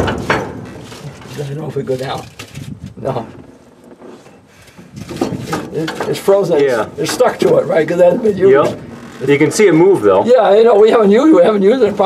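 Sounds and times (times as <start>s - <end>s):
brake scraping and rubbing: 0.0s - 12.0s.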